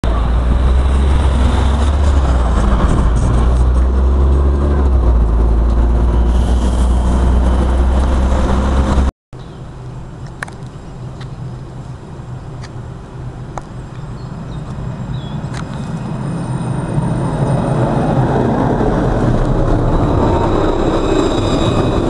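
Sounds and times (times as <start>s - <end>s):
diesel bus engine rumbling: 0.0s - 9.1s, 9.7s - 22.0s
quiet street background: 0.0s - 22.0s.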